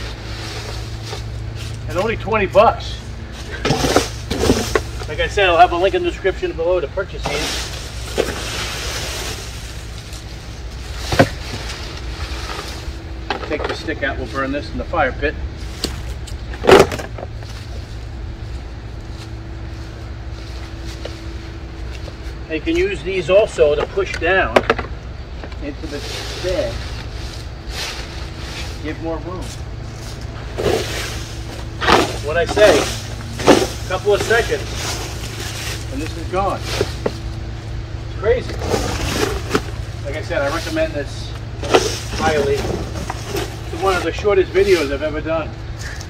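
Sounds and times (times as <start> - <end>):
dry leaves rustling: 0.0 - 23.7, 25.1 - 46.0
low background rumble: 0.0 - 46.0
steady low hum: 0.0 - 46.0
plastic scoops clattering on grass: 3.4 - 5.2, 30.0 - 37.3, 38.4 - 40.8
plastic bin liner rustling: 30.1 - 36.0.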